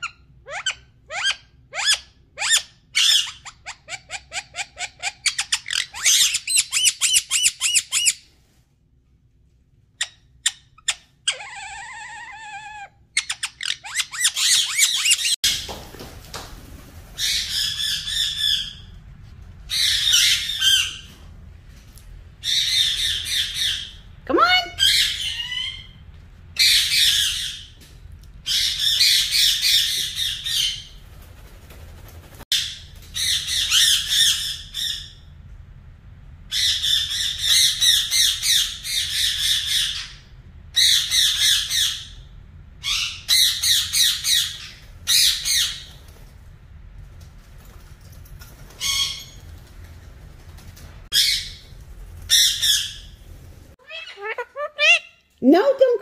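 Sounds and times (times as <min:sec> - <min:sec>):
parakeets squawking: 0:00.5 - 0:08.2, 0:10.0 - 0:15.4, 0:19.7 - 0:21.1, 0:22.4 - 0:26.0, 0:26.6 - 0:27.7, 0:51.1 - 0:51.7, 0:52.3 - 0:53.2, 0:53.8 - 0:55.3.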